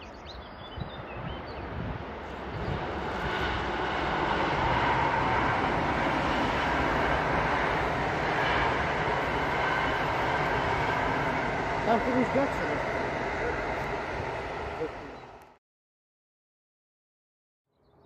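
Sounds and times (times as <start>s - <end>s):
train wheels rumbling on rail: 1.0s - 15.5s.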